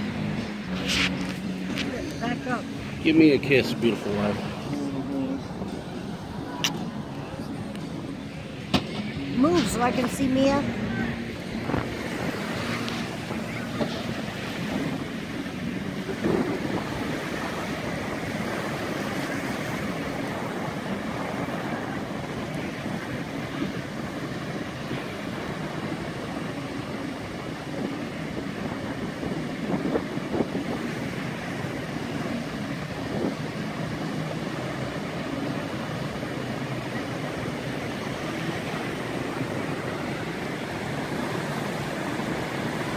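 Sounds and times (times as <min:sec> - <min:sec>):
ocean surf washing onto beach: 0:00.0 - 0:42.9
wind on microphone: 0:09.1 - 0:42.9.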